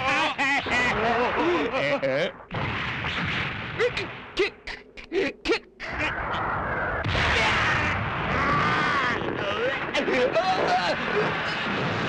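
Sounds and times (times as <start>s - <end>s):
heavy crash with rumble: 11.0s - 12.0s.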